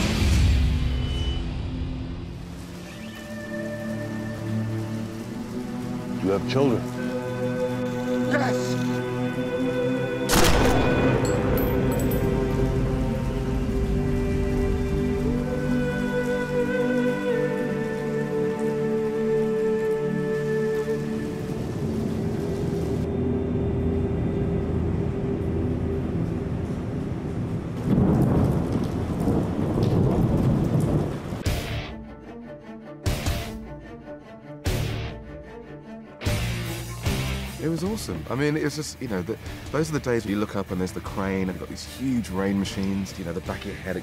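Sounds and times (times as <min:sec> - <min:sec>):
heavy rain: 0:00.0 - 0:33.5, 0:34.7 - 0:44.0
low rumbling noise: 0:21.4 - 0:31.4.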